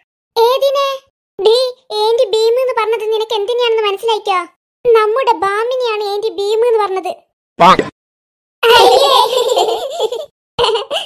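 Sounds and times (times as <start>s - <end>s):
cartoon characters laughing: 8.6s - 11.0s.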